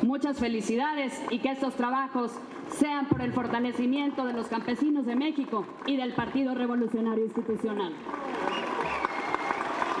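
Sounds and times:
crowd applauding: 8.0s - 10.0s.

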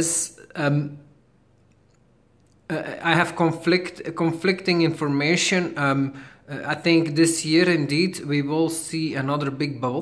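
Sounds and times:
man talking: 0.0s - 1.1s, 2.7s - 10.0s.

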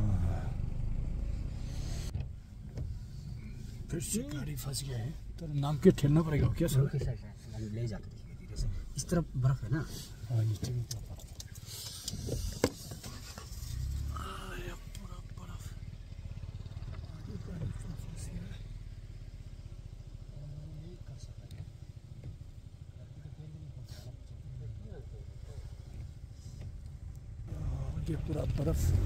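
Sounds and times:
car engine idling: 0.0s - 29.0s.

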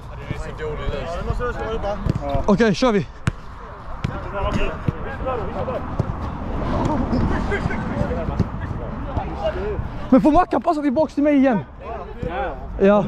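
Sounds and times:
players chattering: 0.0s - 13.0s
foot kicking football: 3.2s - 5.2s, 5.8s - 9.4s.

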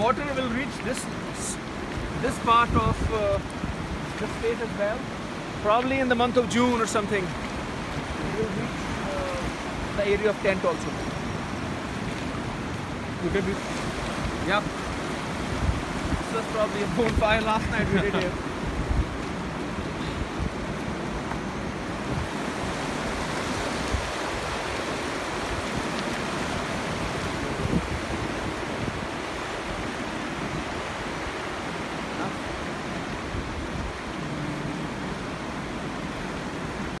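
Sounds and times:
river rushing over stones: 0.0s - 37.0s.

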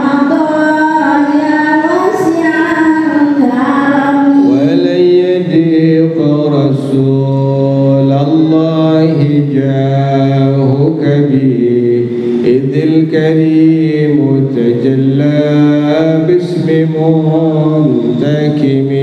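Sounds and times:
man chanting into microphone: 4.2s - 19.0s.

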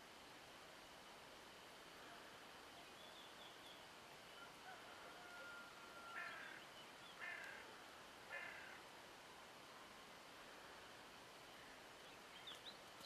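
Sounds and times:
faint outdoor background: 0.0s - 13.0s
harsh bird calls: 5.5s - 7.6s.

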